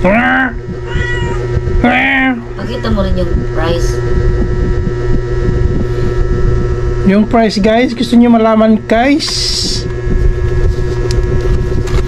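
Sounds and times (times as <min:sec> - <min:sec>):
constant hum: 0:00.0 - 0:12.0
low rumble: 0:00.0 - 0:12.0.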